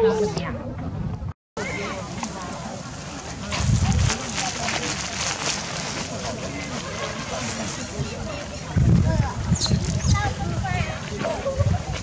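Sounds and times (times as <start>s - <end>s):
murmur of many people: 0.0s - 12.0s.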